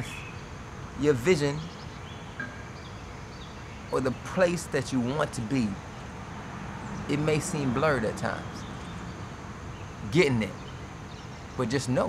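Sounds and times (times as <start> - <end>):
man talking: 0.0 - 0.2, 1.0 - 1.7, 3.9 - 5.9, 7.1 - 8.6, 10.0 - 10.7, 11.6 - 12.0
faint bird chirps: 0.0 - 6.2, 6.8 - 12.0
outdoor background noise: 0.0 - 12.0.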